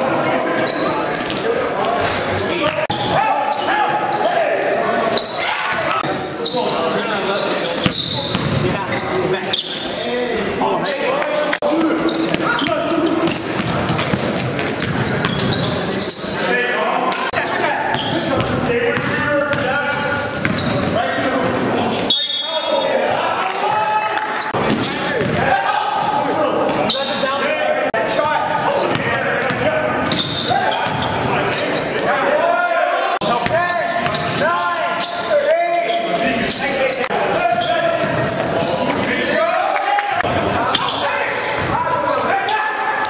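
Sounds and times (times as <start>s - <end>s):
voices of players and spectators: 0.0s - 43.0s.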